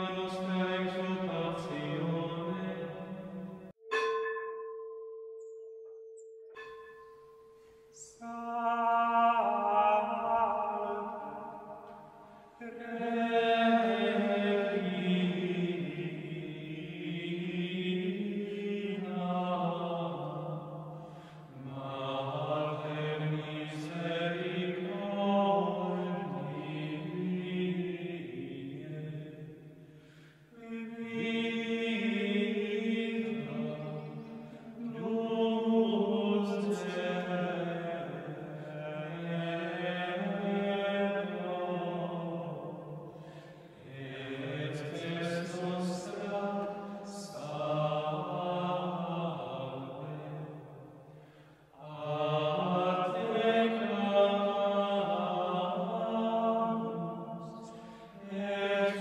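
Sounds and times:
male choir chanting: 0.0 - 3.4, 8.2 - 11.8, 12.6 - 29.4, 30.6 - 50.8, 51.7 - 59.0.

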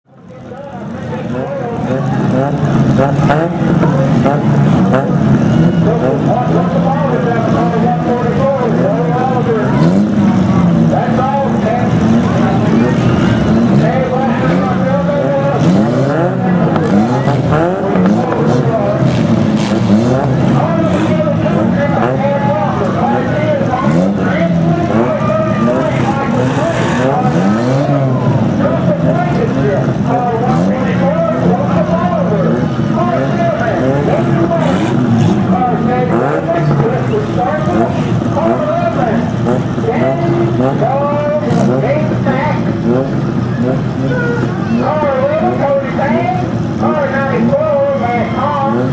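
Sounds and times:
car engines revving: 0.0 - 48.9
crowd murmur: 0.0 - 48.9.

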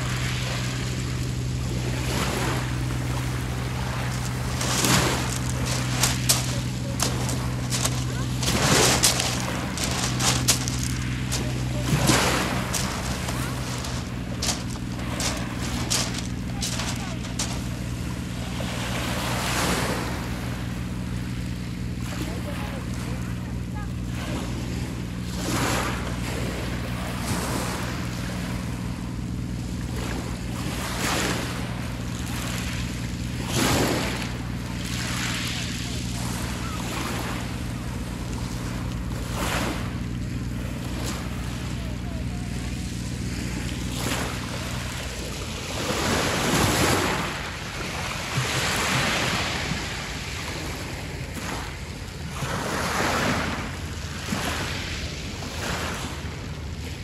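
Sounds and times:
big wave crashing: 0.0 - 20.8
steady low hum: 0.0 - 57.0
waves washing up pebble beach: 0.0 - 57.0.

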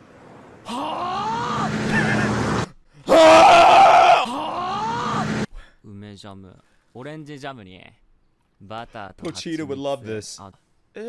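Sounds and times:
man screaming: 0.7 - 2.4, 3.1 - 5.5.

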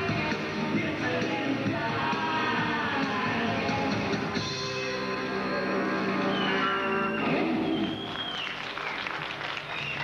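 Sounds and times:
audience applauding: 6.9 - 10.0.

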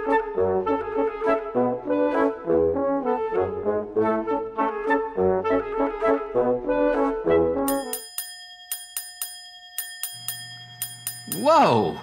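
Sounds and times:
sharp ticking: 7.7 - 12.0
steady ringing tone: 7.7 - 12.0.

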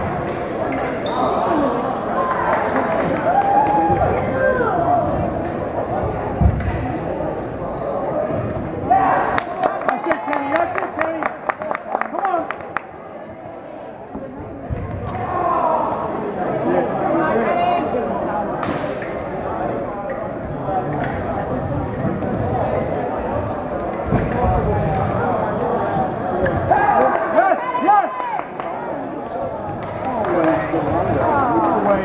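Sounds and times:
crowd voices: 0.0 - 32.0.

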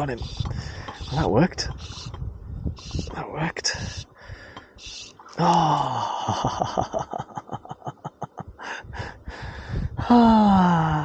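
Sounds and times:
man exclaiming: 5.4 - 6.7, 10.0 - 11.0
breathy laughter: 5.9 - 9.2.

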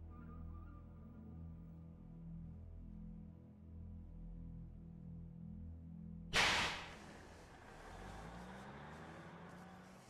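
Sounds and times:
sharp swish or crack: 6.4 - 7.2.

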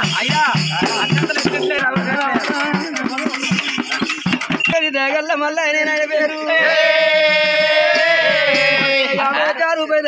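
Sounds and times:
men chanting: 0.0 - 3.8, 6.2 - 9.7
rhythmic percussion hits: 0.0 - 9.4.

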